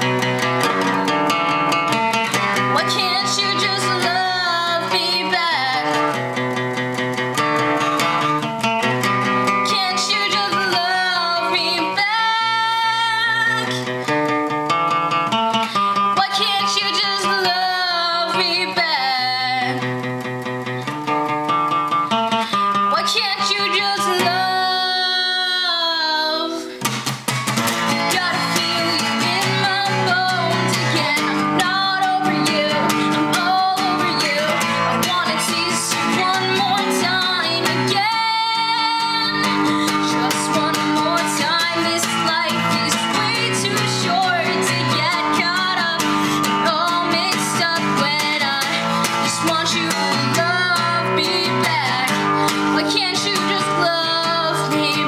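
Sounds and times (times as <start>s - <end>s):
woman singing: 0.0s - 14.5s, 15.2s - 20.9s, 22.0s - 26.9s, 27.7s - 55.0s
strummed acoustic guitar: 0.0s - 55.0s.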